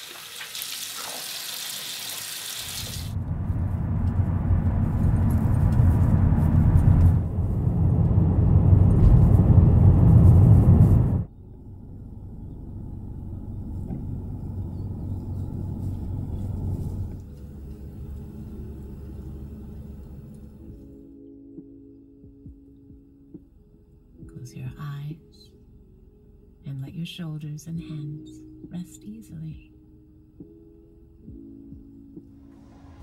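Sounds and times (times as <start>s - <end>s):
loud rushing rumble: 3.1s - 20.6s
car cabin low rumble: 3.1s - 21.0s.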